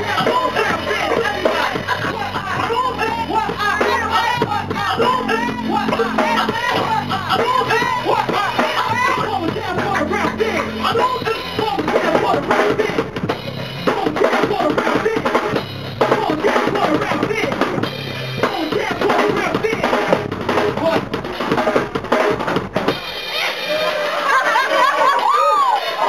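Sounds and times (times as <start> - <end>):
person rapping through amplifier: 0.0 - 13.2, 13.8 - 17.8, 18.4 - 21.2
drum-heavy beat with bass: 0.0 - 26.0.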